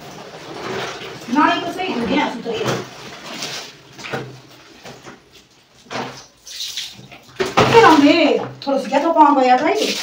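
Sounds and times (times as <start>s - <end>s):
water splashing in a washtub: 0.0s - 10.0s.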